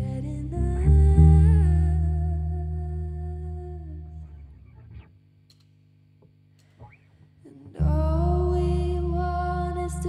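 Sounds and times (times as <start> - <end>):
deep electric bass note: 0.0 - 5.0
woman singing long note: 7.5 - 10.0.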